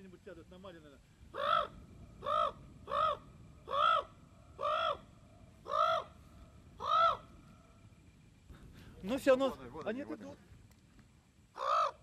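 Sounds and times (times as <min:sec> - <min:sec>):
large bird harsh calls: 0:01.3 - 0:07.4, 0:11.6 - 0:12.0.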